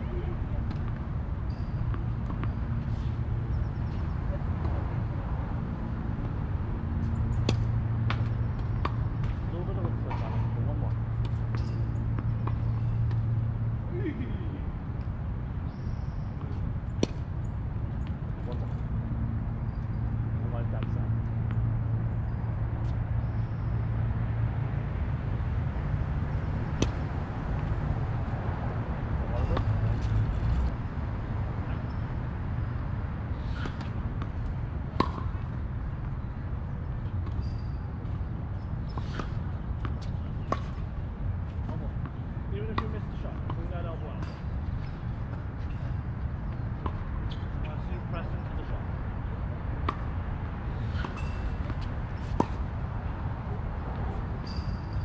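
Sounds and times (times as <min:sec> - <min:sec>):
steady low rumble: 0:00.0 - 0:11.2
tennis balls bouncing on hard court: 0:00.7 - 0:04.8, 0:06.2 - 0:13.6, 0:26.4 - 0:27.8, 0:33.4 - 0:36.2, 0:38.8 - 0:45.8, 0:49.8 - 0:54.8
tennis balls struck by racquets: 0:00.7 - 0:04.9, 0:05.7 - 0:14.3, 0:15.7 - 0:25.7, 0:26.3 - 0:30.8, 0:33.4 - 0:47.9, 0:49.2 - 0:54.8.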